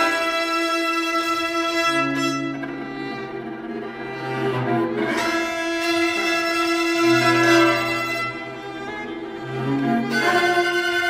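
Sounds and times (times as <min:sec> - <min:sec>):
string quartet bowed chords: 0:00.0 - 0:11.0.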